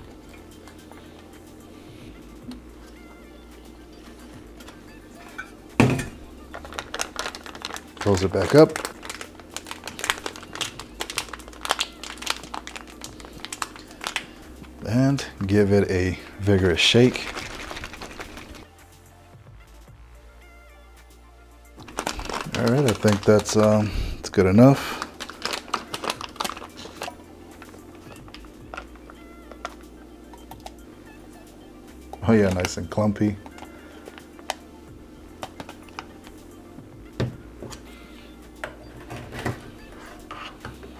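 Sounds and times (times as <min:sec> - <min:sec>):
soft background music: 0:00.0 - 0:40.9
foil pouch crinkling: 0:06.4 - 0:15.6, 0:16.2 - 0:18.7, 0:21.8 - 0:29.8, 0:35.3 - 0:36.4.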